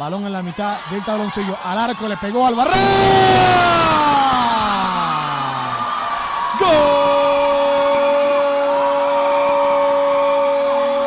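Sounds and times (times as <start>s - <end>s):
sports commentator long shout: 0.1s - 11.0s.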